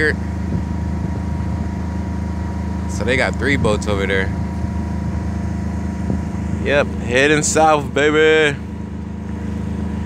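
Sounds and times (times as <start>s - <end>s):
boat engine humming: 0.0s - 10.0s.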